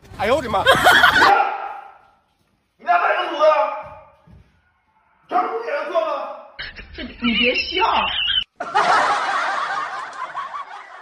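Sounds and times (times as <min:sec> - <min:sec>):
people laughing: 0:00.6 - 0:01.3, 0:06.6 - 0:11.0.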